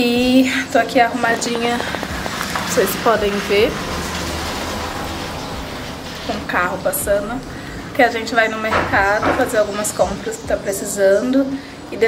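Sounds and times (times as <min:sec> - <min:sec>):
car passing: 0:00.0 - 0:12.0.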